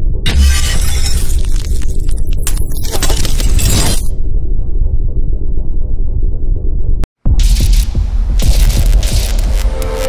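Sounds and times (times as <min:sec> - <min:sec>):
glass shattering: 0:00.3 - 0:04.0.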